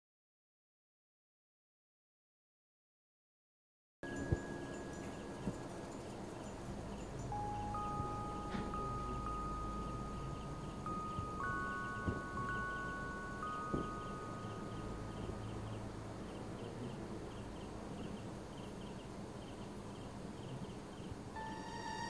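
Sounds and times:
chime-like tones: 4.0 - 17.9, 21.4 - 22.0
low hum: 4.1 - 22.0
soft knocks: 13.5 - 14.2.

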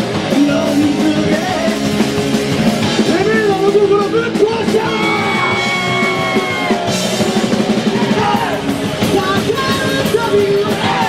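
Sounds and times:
man singing and shouting: 0.0 - 2.0, 3.0 - 6.1
bass guitar: 0.0 - 11.0
electric guitars: 0.0 - 11.0.

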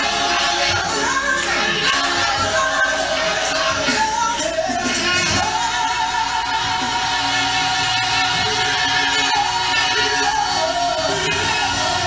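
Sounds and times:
band playing: 0.0 - 12.0
gospel choir singing: 0.0 - 12.0.

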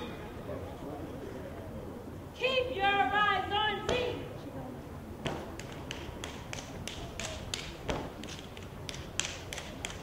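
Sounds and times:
hand claps: 5.3 - 10.0.

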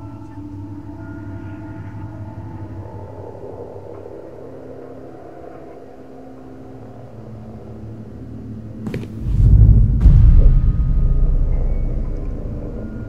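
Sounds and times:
low rumbling drone: 0.0 - 13.0.

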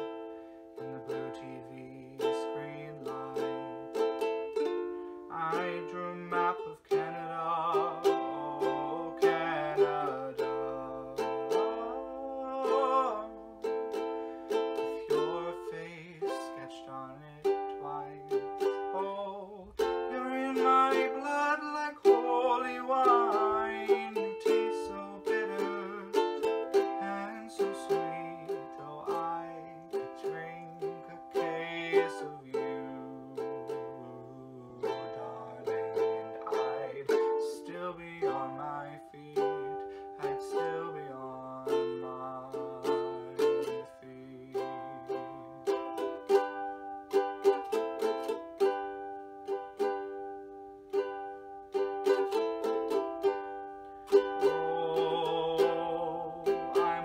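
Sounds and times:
ukulele strumming chords: 0.0 - 57.0
man singing: 0.8 - 50.2, 50.9 - 57.0.

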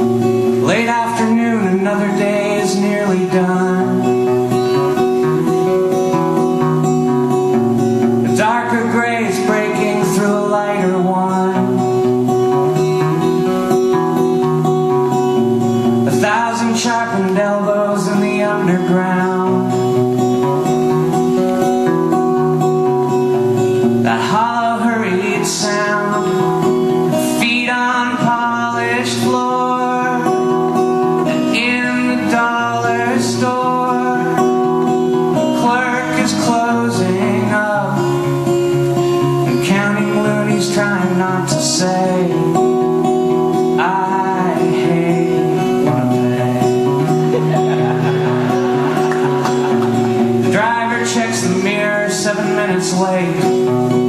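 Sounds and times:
man singing: 0.0 - 14.5, 15.8 - 20.7, 23.8 - 54.0
acoustic guitar: 0.0 - 54.0.

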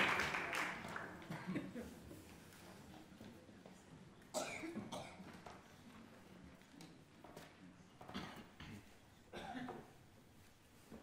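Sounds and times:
person coughing: 8.2 - 9.9.

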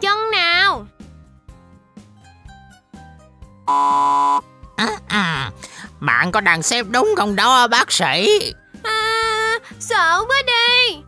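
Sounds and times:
soft background music: 0.0 - 11.0
cartoon buzzer: 3.7 - 4.5.

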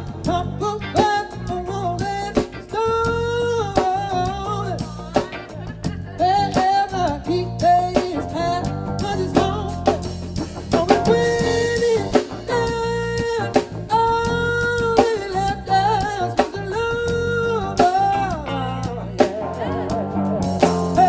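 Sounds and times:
live soul band playing: 0.0 - 21.0
man singing long notes: 0.0 - 21.0.

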